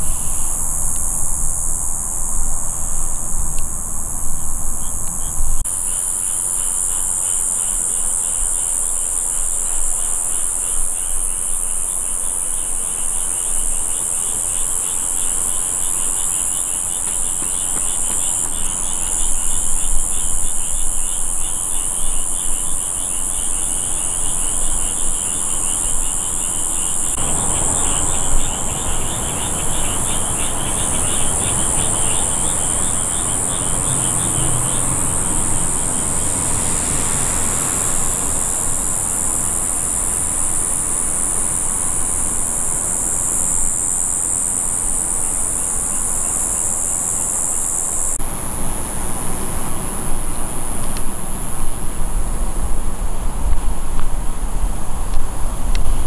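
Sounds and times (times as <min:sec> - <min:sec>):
high-pitched insect hiss: 0:00.0 - 0:56.0
rapid pulsing insect trill: 0:00.0 - 0:56.0.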